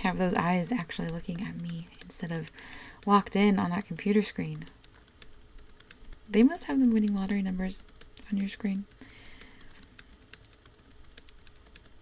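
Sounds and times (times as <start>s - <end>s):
computer keyboard typing: 0.0s - 12.0s.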